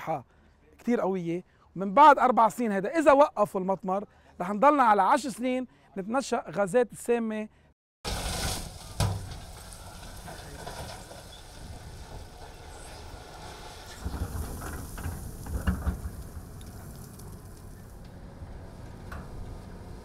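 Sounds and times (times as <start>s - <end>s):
heavy diesel machinery rumbling: 8.8s - 20.0s.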